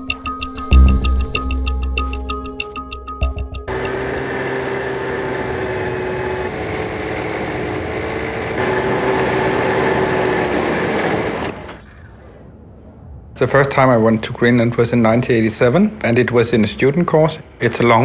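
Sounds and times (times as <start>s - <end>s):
snowmobile engine whine: 3.7s - 12.5s.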